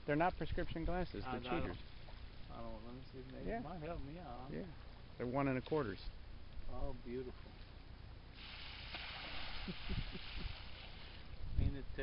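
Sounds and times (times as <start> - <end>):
fish splashing at water surface: 8.4 - 11.3
wind rumble on microphone: 9.5 - 12.0.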